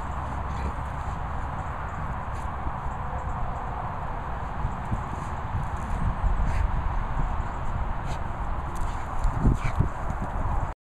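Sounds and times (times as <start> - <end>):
dog scuffling on grass: 0.0 - 2.7, 7.9 - 10.4
steady low rumble: 0.0 - 10.7.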